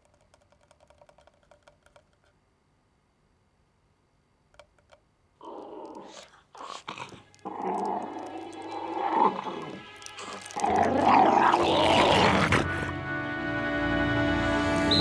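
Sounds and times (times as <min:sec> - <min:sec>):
cartoon animal calls and growls: 0:05.4 - 0:12.9
film score music: 0:07.2 - 0:15.0.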